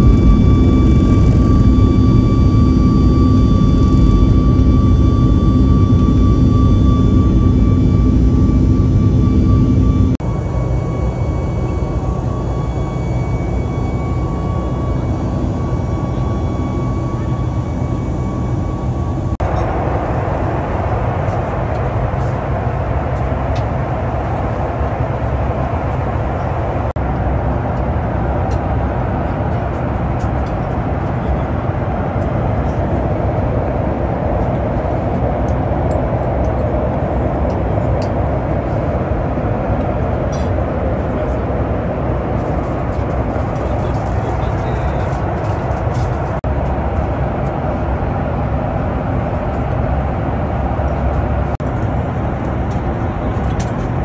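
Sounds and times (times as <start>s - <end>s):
airliner cabin engine and airflow noise: 0.0s - 54.0s.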